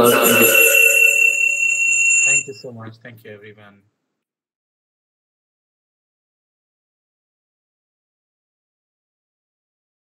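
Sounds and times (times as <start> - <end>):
steady electronic tone: 0.0 - 2.6
voices: 0.0 - 2.7.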